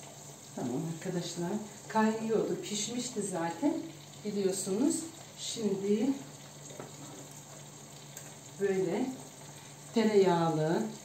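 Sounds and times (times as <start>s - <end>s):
food sizzling in a pot: 0.0s - 11.0s.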